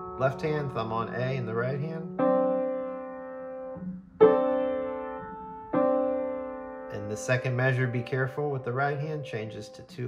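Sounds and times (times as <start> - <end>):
piano chords played slowly: 0.0 - 9.9.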